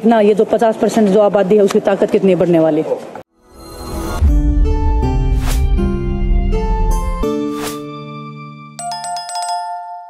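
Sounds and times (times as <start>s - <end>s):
bright bell-like chime: 8.8s - 10.0s.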